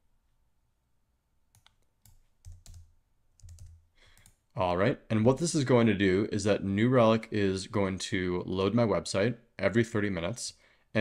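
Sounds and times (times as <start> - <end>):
computer keyboard clicks: 1.6 - 4.4.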